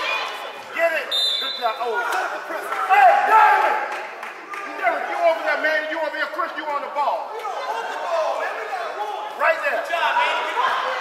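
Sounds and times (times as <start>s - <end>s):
people shouting in gym: 0.0s - 3.9s, 7.1s - 11.0s.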